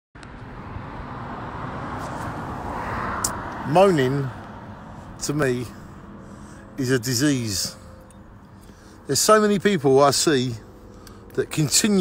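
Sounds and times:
road traffic noise: 0:00.2 - 0:12.0.

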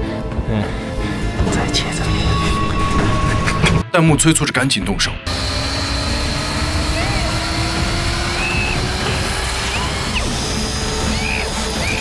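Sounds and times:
disc saw whining: 0:05.3 - 0:12.0.

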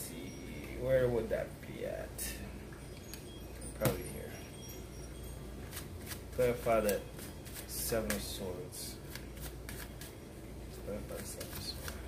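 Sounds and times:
cards being shuffled: 0:05.7 - 0:12.0.

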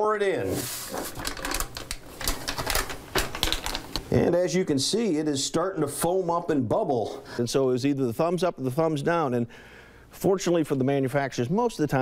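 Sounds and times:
plastic pouch crinkling: 0:00.6 - 0:04.0.

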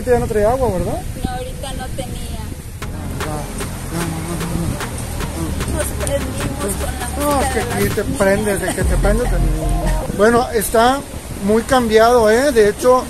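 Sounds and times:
indistinct talking: 0:02.8 - 0:10.6
steady low rumble: 0:02.8 - 0:10.6.

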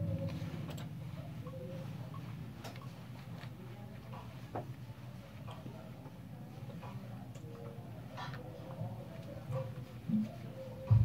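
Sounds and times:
low steady hum: 0:00.0 - 0:11.0
faint clicks and ticks: 0:00.7 - 0:09.8.

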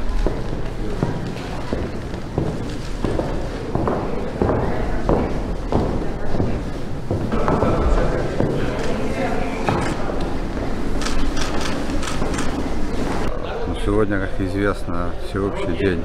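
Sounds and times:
footsteps on wooden floor: 0:00.0 - 0:13.3
voices murmuring in echoing hall: 0:00.0 - 0:16.0.

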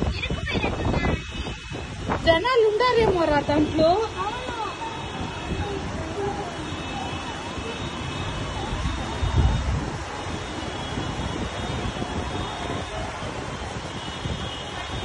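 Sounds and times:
rain: 0:00.0 - 0:15.0
wind: 0:00.0 - 0:15.0
wind gust buffeting microphone: 0:00.0 - 0:15.0.

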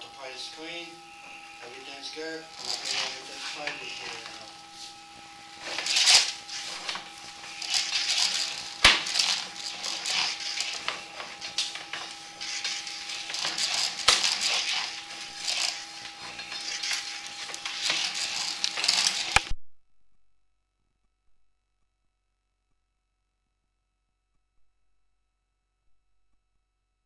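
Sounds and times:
faint steady whine: 0:00.0 - 0:19.6
cable rattling and scraping: 0:01.2 - 0:19.5.

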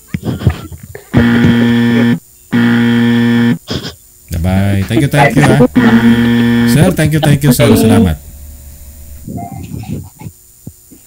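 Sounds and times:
laughter: 0:00.2 - 0:02.2
buzzer tones: 0:01.1 - 0:03.6, 0:04.9 - 0:09.6.

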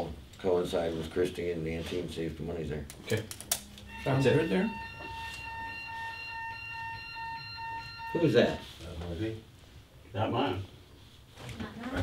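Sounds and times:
high electronic alert tone: 0:03.9 - 0:08.7.

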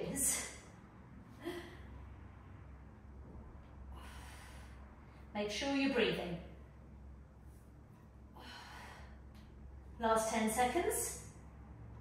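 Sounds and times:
woman breathing with exertion: 0:01.2 - 0:02.4, 0:03.6 - 0:05.3, 0:08.2 - 0:09.8.

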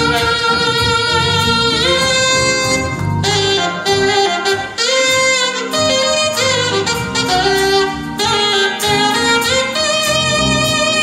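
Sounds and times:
low accompaniment: 0:00.0 - 0:11.0
saxophone playing gospel tune: 0:00.0 - 0:11.0.

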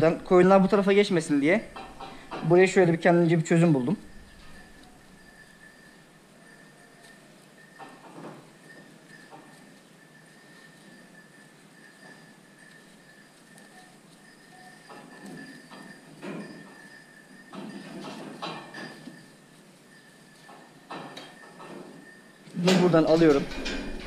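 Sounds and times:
metal gate clattering: 0:00.0 - 0:06.1, 0:17.5 - 0:19.3, 0:20.6 - 0:24.0
wire fastening clinking and rattling: 0:00.0 - 0:24.0.

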